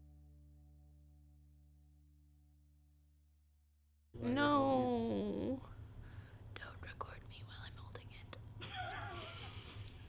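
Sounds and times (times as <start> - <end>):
woman humming: 4.3 - 5.8
woman whispering: 6.6 - 8.5.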